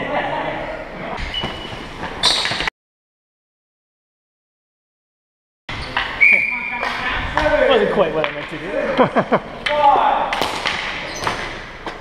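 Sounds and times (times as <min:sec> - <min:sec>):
players' voices echoing in gym: 0:00.0 - 0:02.7, 0:05.7 - 0:12.0
thin high squeak: 0:01.2 - 0:02.6.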